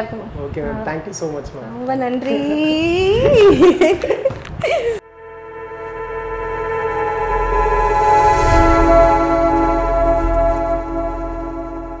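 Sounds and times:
synthetic chord ringing: 5.0s - 12.0s.

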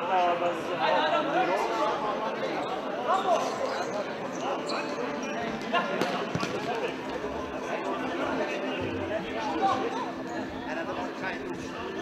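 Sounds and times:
spectators chatting: 0.0s - 12.0s.

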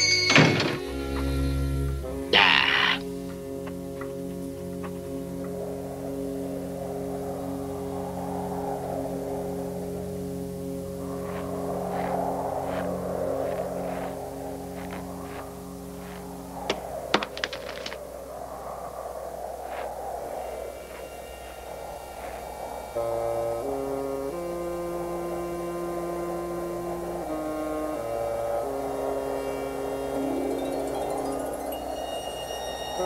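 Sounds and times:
orchestral music sustained chords: 0.0s - 17.1s, 20.2s - 33.0s
whooshing wind effect: 5.3s - 33.0s.

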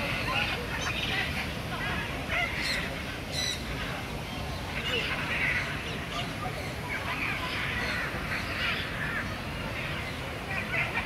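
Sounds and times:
birds calling: 0.0s - 11.0s
people's voices: 0.0s - 11.0s.

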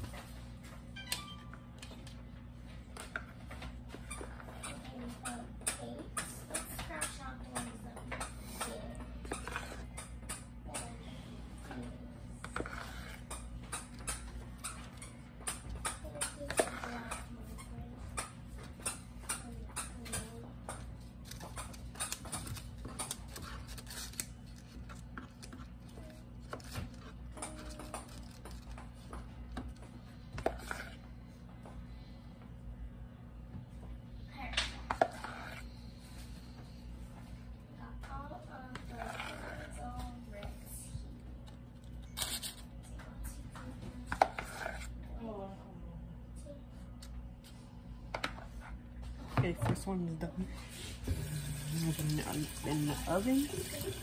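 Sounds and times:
steady low hum: 0.0s - 54.0s
spoon scraping plastic bowl: 9.2s - 9.9s, 12.4s - 13.9s, 30.4s - 31.0s, 34.9s - 35.7s, 38.8s - 39.8s, 44.1s - 45.0s.

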